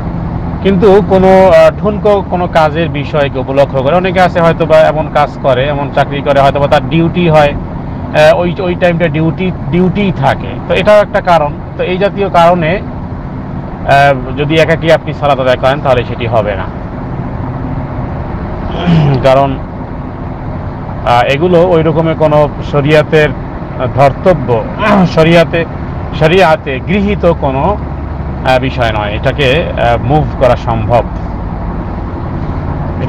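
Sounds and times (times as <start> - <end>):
man talking: 0.6 - 12.9, 13.8 - 16.8, 18.7 - 19.6, 21.0 - 27.8, 28.4 - 31.2.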